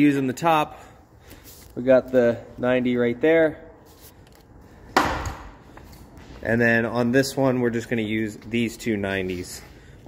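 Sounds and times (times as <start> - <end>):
sharp knock: 5.0 - 5.5.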